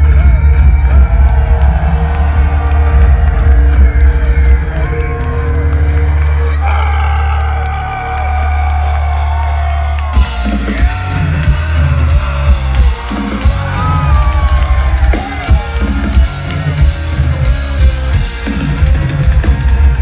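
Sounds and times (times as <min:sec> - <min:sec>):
fast drumming: 0:00.0 - 0:05.3, 0:06.6 - 0:20.0
metal band playing live: 0:00.0 - 0:20.0.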